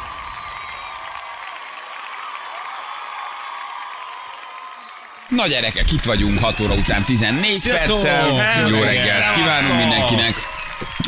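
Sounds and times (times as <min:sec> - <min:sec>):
crowd applause and cheering: 0:00.0 - 0:11.0.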